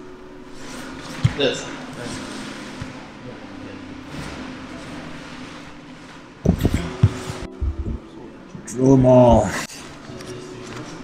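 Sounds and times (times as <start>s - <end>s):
steady low hum: 0.0s - 11.0s
bodies scuffling on mat: 6.4s - 7.9s
bodies thumping on mat: 6.4s - 8.0s.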